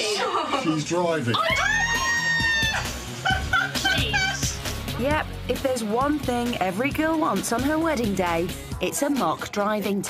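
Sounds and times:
background music: 0:00.0 - 0:10.0
woman shrieking with excitement: 0:01.3 - 0:02.9.

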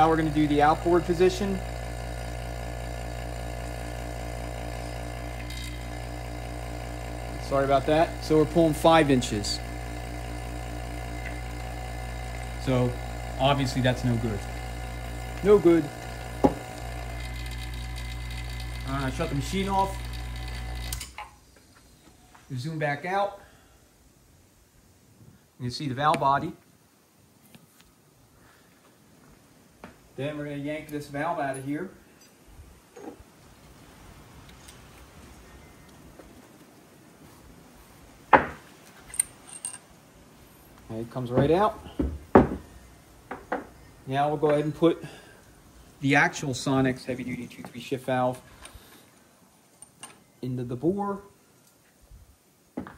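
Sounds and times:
vacuum pump low drone: 0:00.0 - 0:21.0
light metallic clicks and clinks: 0:39.1 - 0:39.9.

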